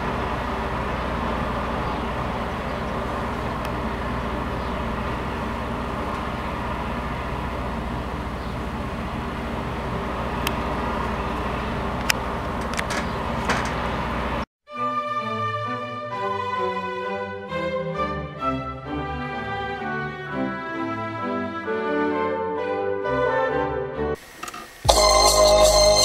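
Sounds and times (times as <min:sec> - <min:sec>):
constant hum: 0:00.0 - 0:14.4.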